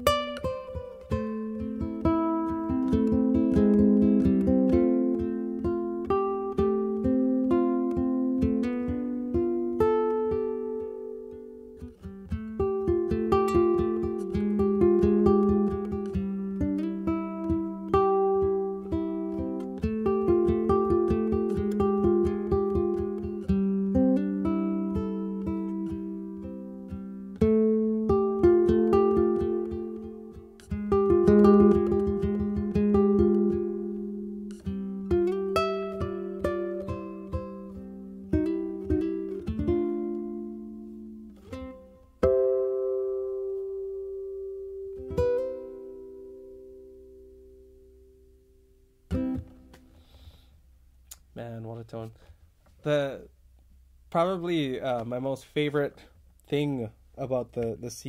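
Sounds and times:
electric ukulele fingerstyle: 0.0 - 58.0.

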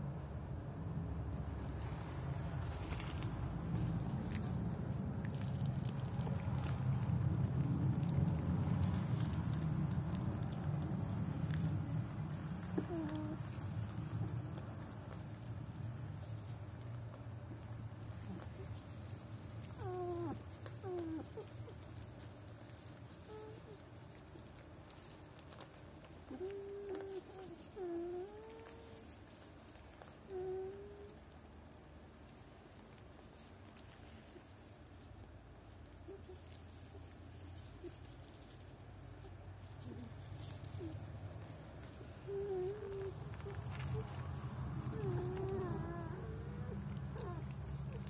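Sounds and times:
low steady hum: 0.0 - 48.0
puppies shuffling in straw: 0.0 - 48.0
puppy whining: 5.3 - 31.4, 35.7 - 48.0
puppies whimpering: 12.5 - 14.6, 19.6 - 22.0, 26.2 - 29.1, 39.8 - 48.0.

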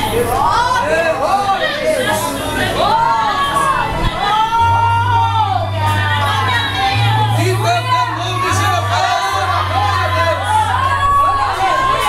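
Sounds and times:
man preaching through pa system: 7.3 - 10.6.

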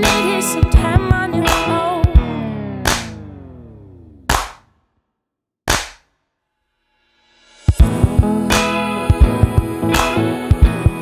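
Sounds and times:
sharp percussive hits: 2.8 - 3.3, 4.3 - 4.7, 5.7 - 6.2.

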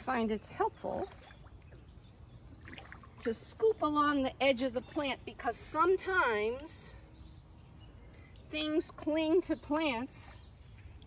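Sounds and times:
pond water sloshing: 0.0 - 11.0.

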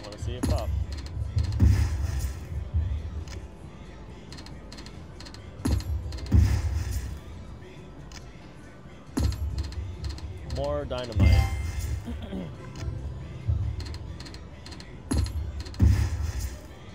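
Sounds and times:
casino background noise: 0.0 - 16.9
slot machine thump: 0.1 - 2.2, 5.2 - 7.1, 9.2 - 12.0
slot machine music: 9.2 - 12.3.

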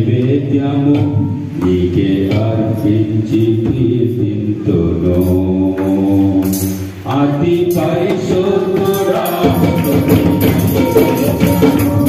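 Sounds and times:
amplified worship singing: 0.0 - 12.0.

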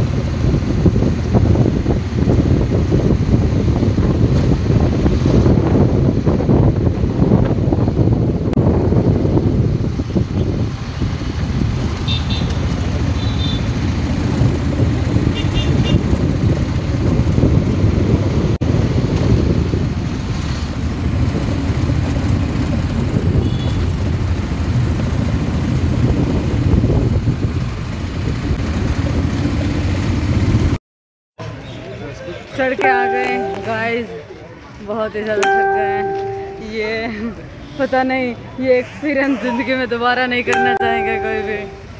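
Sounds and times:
road and wind noise: 0.0 - 30.8, 31.4 - 41.9
faint high-pitched beeps: 32.8 - 33.9, 40.6 - 41.9.

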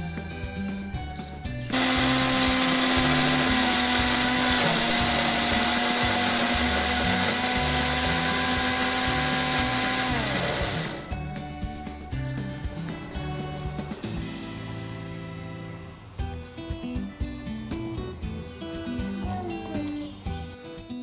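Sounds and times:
mixer grinder motor whine: 1.7 - 11.3.

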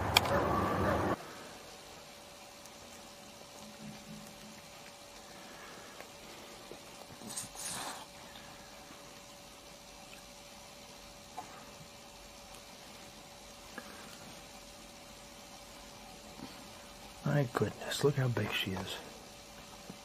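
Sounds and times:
faint hum: 0.0 - 20.0
steady hiss: 0.0 - 20.0.

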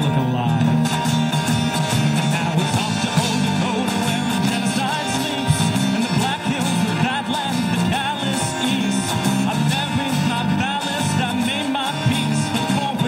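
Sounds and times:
person singing: 0.0 - 1.0, 1.9 - 13.0
bass guitar: 0.0 - 13.0
drums: 0.0 - 13.0
strummed acoustic guitar: 0.0 - 13.0.

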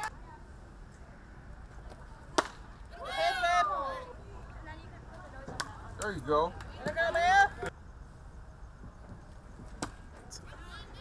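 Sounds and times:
players shouting: 2.8 - 4.2, 6.1 - 7.7.

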